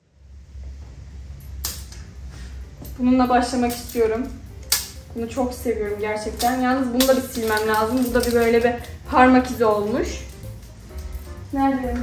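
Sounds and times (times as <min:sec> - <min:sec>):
low steady hum: 0:00.0 - 0:12.0
small objects clicking and knocking: 0:06.4 - 0:09.0.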